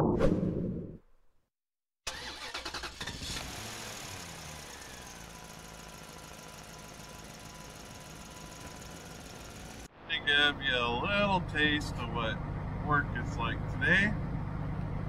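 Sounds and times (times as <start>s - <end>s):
car engine starting and idling: 2.1s - 15.0s.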